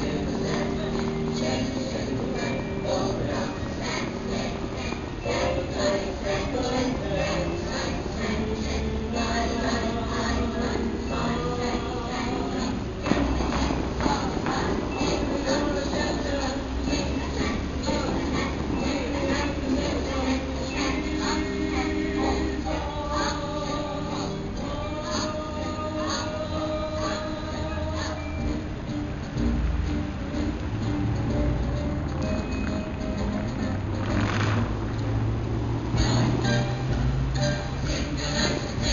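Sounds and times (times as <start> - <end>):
faint music: 0.0 - 38.9.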